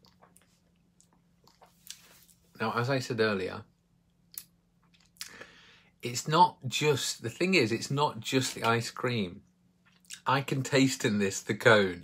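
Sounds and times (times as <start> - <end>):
breathy exhale: 5.3 - 5.9.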